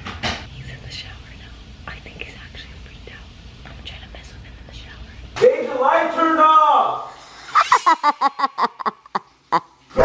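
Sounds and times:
low background hum: 0.0s - 10.0s
woman whispering: 0.5s - 5.3s.

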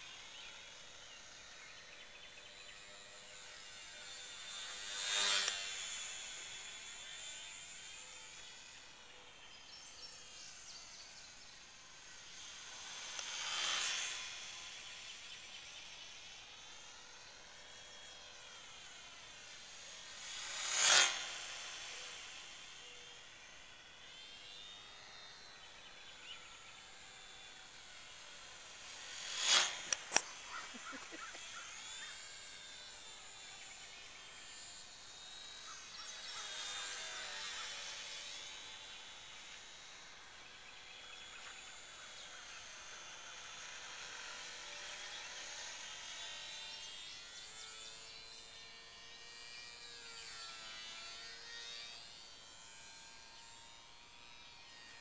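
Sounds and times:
model plane motor whining: 0.0s - 55.0s
sharp clicks: 29.8s - 31.2s.

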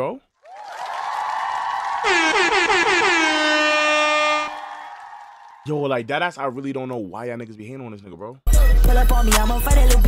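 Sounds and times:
air horn blasts: 2.0s - 4.8s.

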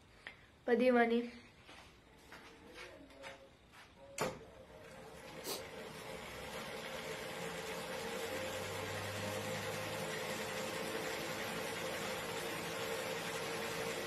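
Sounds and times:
electric bicycle motor whirring: 4.9s - 14.0s.

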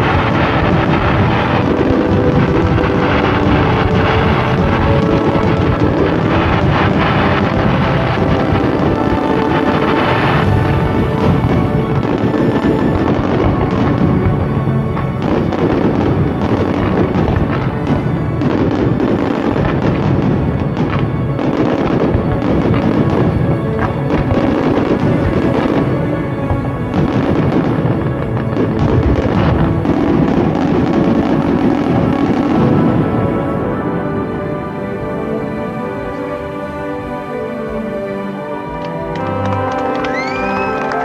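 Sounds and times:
background music: 0.0s - 41.0s
fireworks bursting and crackling: 0.0s - 41.0s.

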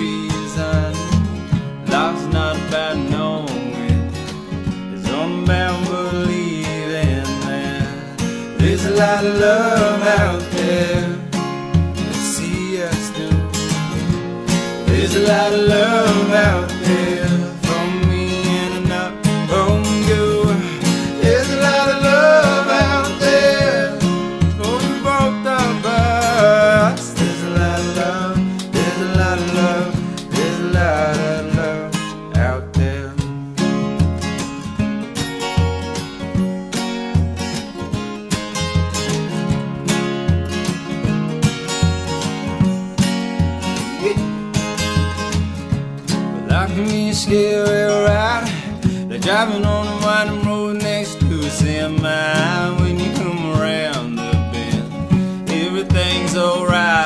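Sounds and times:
acoustic guitars strumming: 0.0s - 57.0s
hand drum beat: 0.0s - 57.0s.

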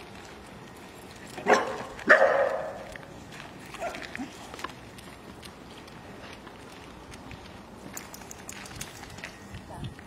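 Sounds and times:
dog barking: 1.4s - 2.8s.

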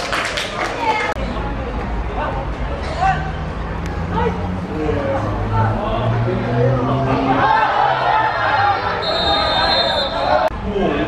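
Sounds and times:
people shouting: 7.0s - 10.5s.

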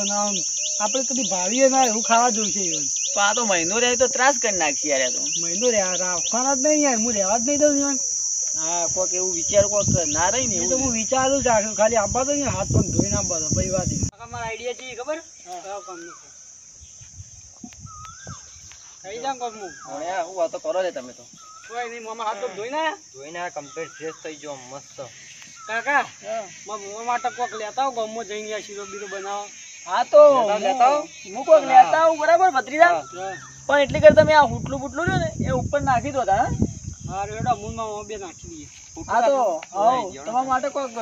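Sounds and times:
men talking: 0.0s - 16.5s, 17.6s - 41.0s
crickets chirping: 0.0s - 41.0s.

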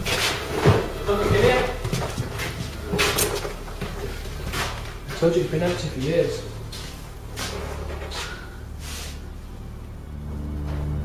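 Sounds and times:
indistinct voices: 0.0s - 6.7s.

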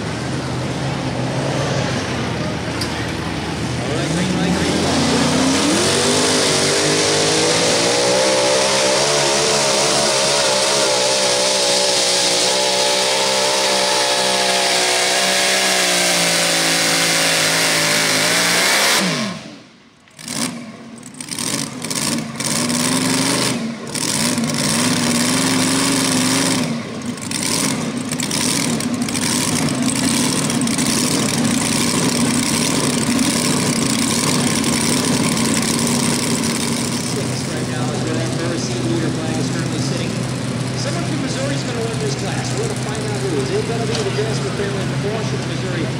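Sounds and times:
supercharged tractor engine: 0.0s - 45.9s.

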